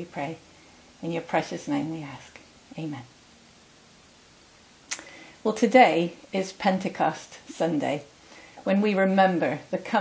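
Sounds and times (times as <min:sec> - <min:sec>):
quick in-breath: 0:05.0 - 0:05.4, 0:08.2 - 0:08.6.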